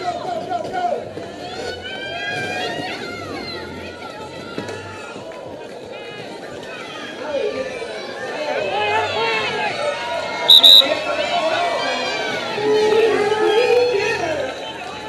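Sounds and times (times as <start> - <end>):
crowd and skaters calling out: 0.0 - 15.0.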